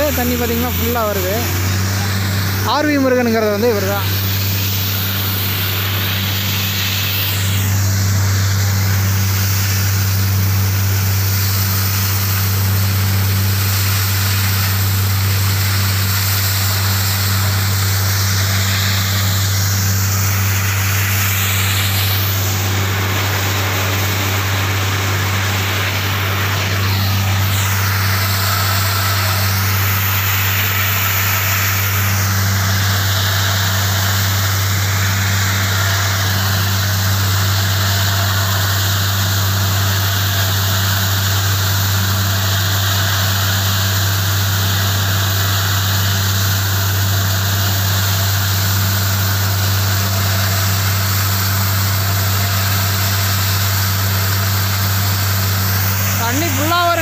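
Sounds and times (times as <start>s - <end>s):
drilling rig engine humming: 0.0s - 40.9s, 55.2s - 57.0s
high whine: 0.0s - 45.5s, 46.2s - 57.0s
hiss: 0.0s - 57.0s.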